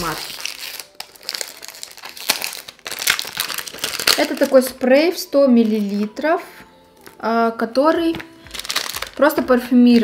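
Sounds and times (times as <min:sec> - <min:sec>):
wrapping and cardboard crinkling: 0:00.0 - 0:07.2, 0:08.2 - 0:10.0.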